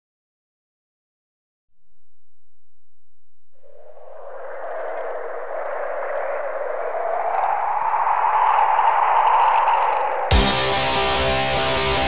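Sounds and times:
rushing wind rising in pitch: 3.5 - 12.0.

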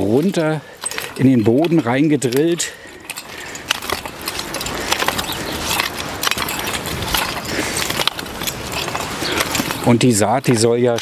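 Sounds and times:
cultivator tines scraping soil: 0.0 - 11.0.

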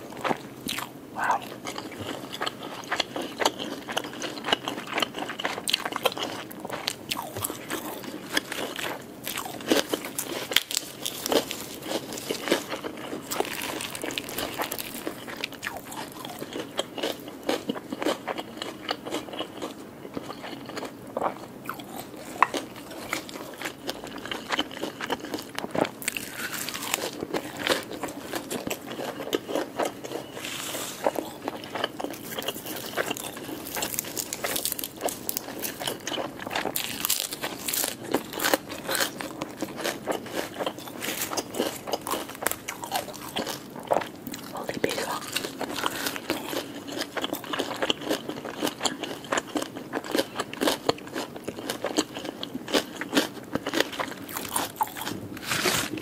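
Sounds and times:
chewing crisp lettuce: 0.0 - 56.0.

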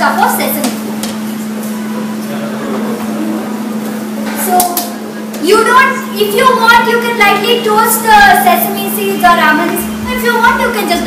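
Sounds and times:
electric fan humming: 0.0 - 11.0.

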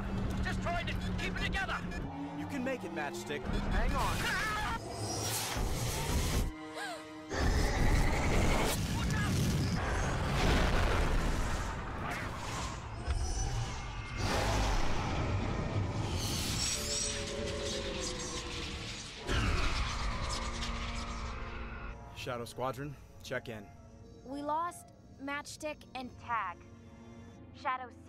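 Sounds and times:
space battle sound effects: 7.7 - 22.0
booming explosions: 8.2 - 12.4.

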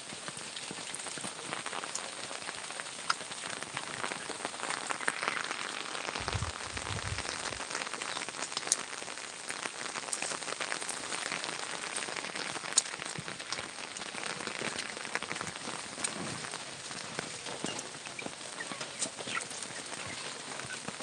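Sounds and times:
steady rain falling: 0.0 - 21.0.

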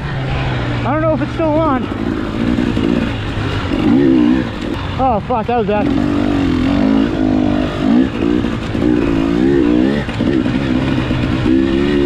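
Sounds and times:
dirt bike engine under throttle: 0.3 - 12.0.

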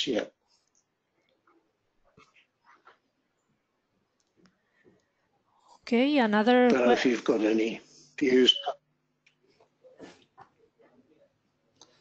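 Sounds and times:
person speaking: 5.9 - 8.8.

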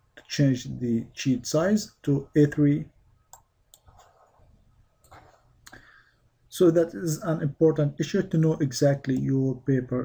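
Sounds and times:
computer mouse clicks: 3.3 - 4.2.

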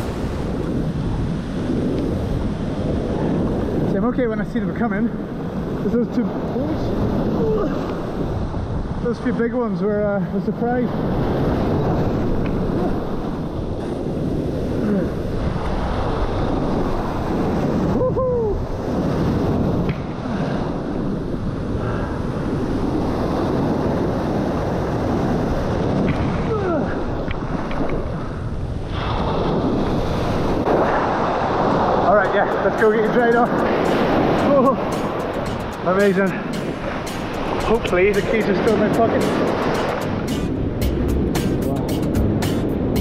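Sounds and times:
wind buffeting microphone: 0.0 - 43.0
surf breaking: 10.8 - 43.0.

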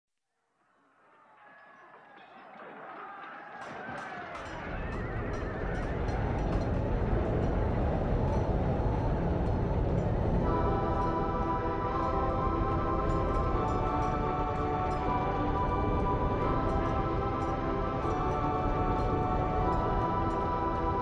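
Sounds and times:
deep rumble: 5.2 - 14.2
held synthesizer chord: 6.8 - 21.0.

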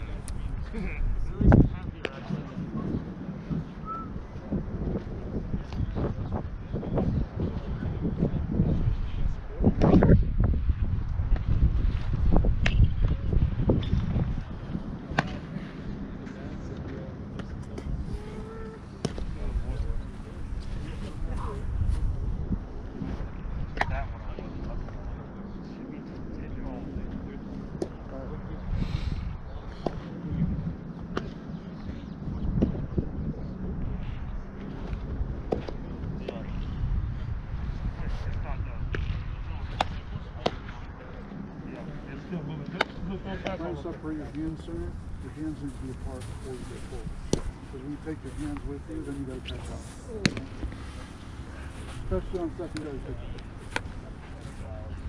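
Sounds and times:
distant voices: 0.0 - 55.0
wind rumble on microphone: 0.0 - 55.0.

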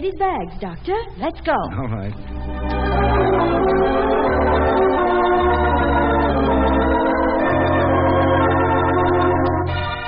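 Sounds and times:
organ chords: 0.0 - 10.0
held organ bass note: 0.7 - 10.0.

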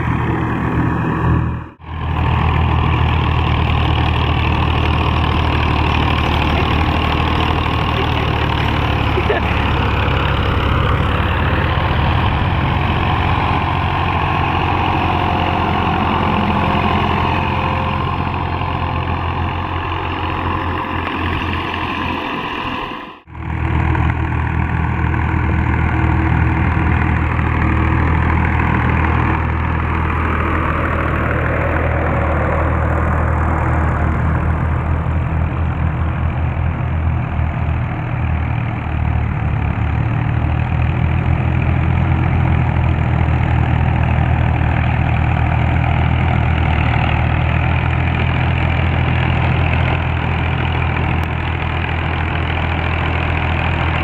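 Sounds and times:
tractor diesel engines running: 0.0 - 54.0.

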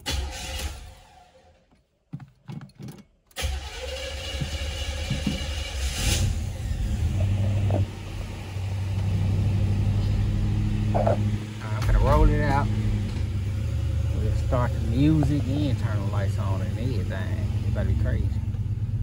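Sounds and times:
car engine starting and idling: 0.0 - 19.0.

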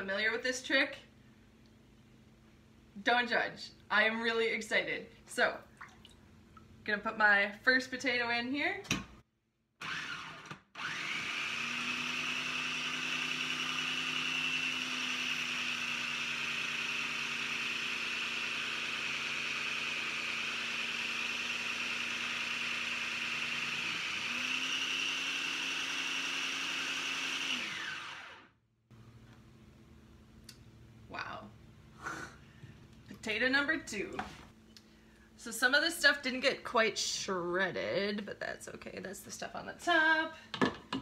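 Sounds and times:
food processor motor whining: 9.8 - 28.6.

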